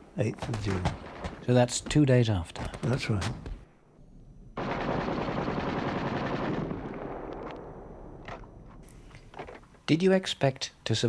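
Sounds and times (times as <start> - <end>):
isolated gunshot cracks: 0.4 - 2.0
rapid machine-gun fire: 0.5 - 1.5, 4.6 - 7.3.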